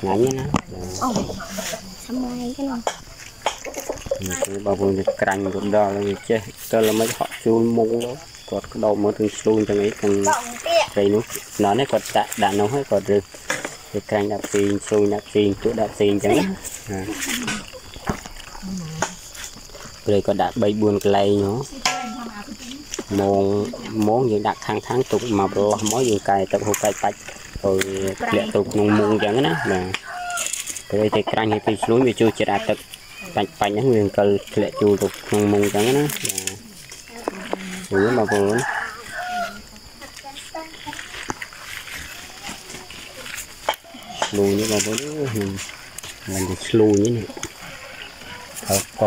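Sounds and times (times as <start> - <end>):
rooster crowing: 28.8 - 30.6, 37.9 - 39.8.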